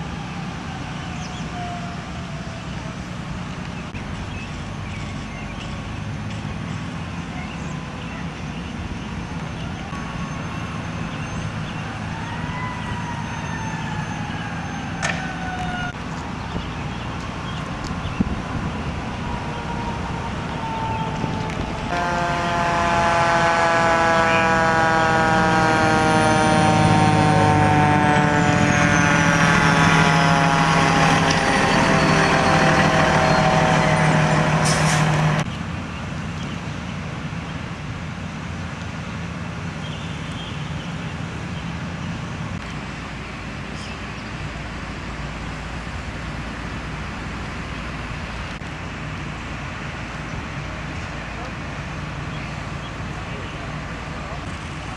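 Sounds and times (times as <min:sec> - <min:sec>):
fire engine diesel engine: 0:00.0 - 0:54.9
high whine gliding down: 0:18.3 - 0:35.5.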